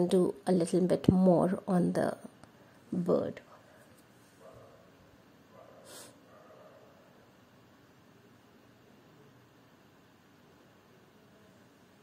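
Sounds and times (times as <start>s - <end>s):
soft breath or sniff: 5.8s - 6.2s.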